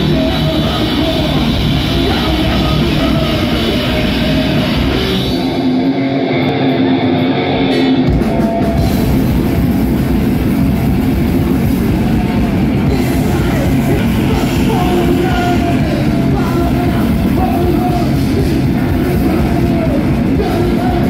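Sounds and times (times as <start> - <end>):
singer's vocals through microphone: 0.0 - 5.4, 12.9 - 21.0
bass guitar: 0.0 - 21.0
distorted electric guitars: 0.0 - 21.0
pounding drums: 7.8 - 21.0.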